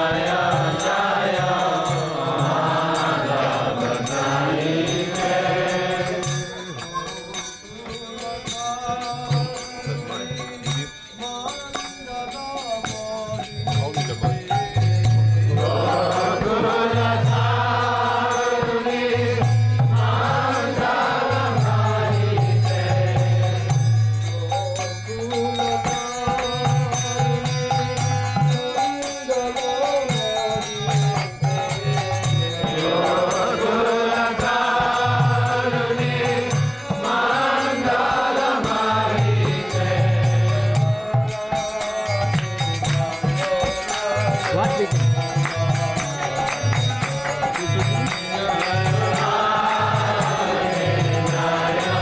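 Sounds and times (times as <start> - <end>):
devotional chanting: 0.0 - 52.0
instruments accompanying: 0.0 - 52.0.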